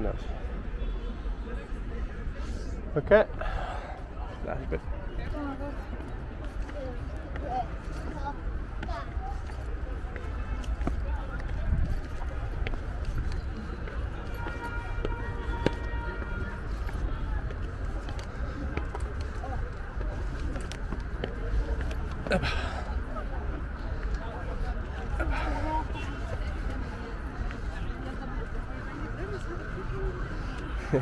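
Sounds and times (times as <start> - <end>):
distant indistinct voices: 0.0 - 31.0.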